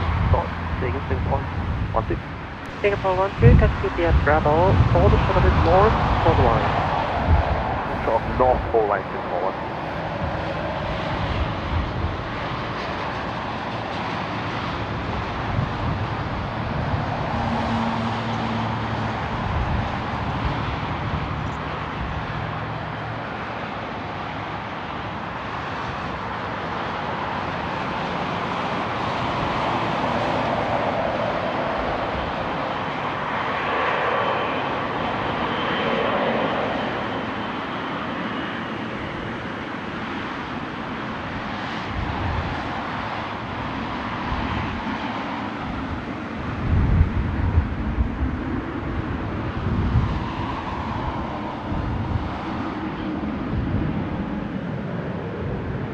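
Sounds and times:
jet engines whining roar: 0:00.0 - 0:55.9.

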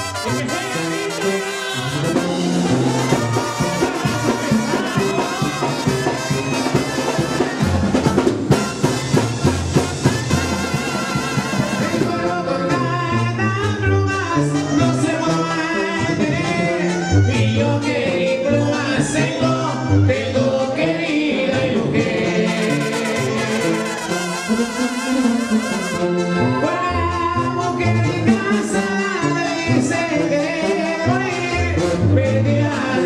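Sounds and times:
brass band with drums playing: 0:00.0 - 0:20.8, 0:22.2 - 0:33.0.

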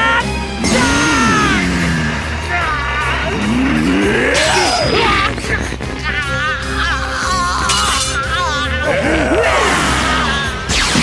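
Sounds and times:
dramatic orchestral music: 0:00.0 - 0:11.0
man's strained wordless shout: 0:00.2 - 0:10.7.

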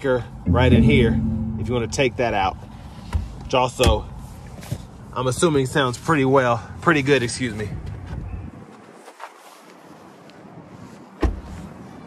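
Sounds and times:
outdoor background noise: 0:03.9 - 0:12.0.

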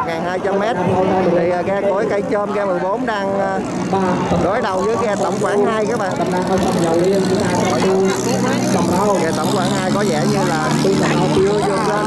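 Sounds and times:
voices: 0:00.0 - 0:12.0
low engine drone: 0:03.4 - 0:12.0.

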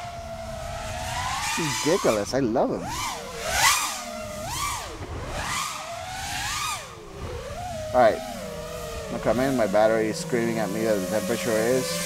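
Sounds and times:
drone motors whining: 0:00.0 - 0:12.0
propeller air rush: 0:00.0 - 0:12.0.

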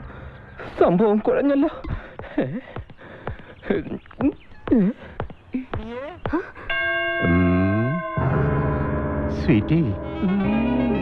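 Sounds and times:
bell-like chime ringing: 0:06.7 - 0:10.2.

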